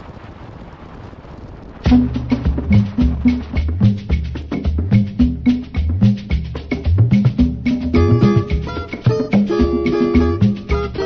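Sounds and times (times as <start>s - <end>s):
wind buffeting microphone: 0.0s - 5.7s
music with percussion beat: 1.9s - 11.0s.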